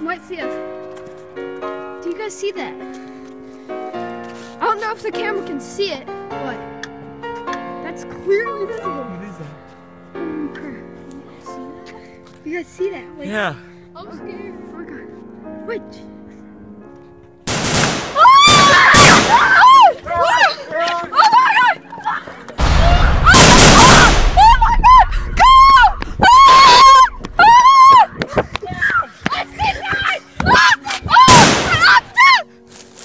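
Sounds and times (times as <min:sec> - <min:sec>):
loud gunshot: 0:17.5 - 0:19.4, 0:22.6 - 0:24.6, 0:31.3 - 0:31.8
sharp bangs: 0:17.5 - 0:19.5, 0:22.6 - 0:27.6, 0:31.3 - 0:31.9
person screaming: 0:22.8 - 0:28.1
person shouting cries: 0:24.4 - 0:32.5.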